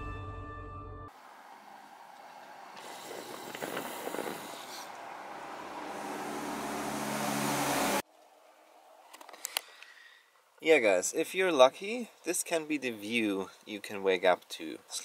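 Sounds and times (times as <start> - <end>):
vehicle passing: 1.1 - 8.0.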